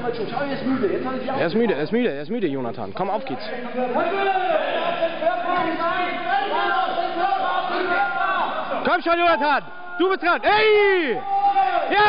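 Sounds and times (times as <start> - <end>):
people shouting and cheering: 3.7 - 12.0.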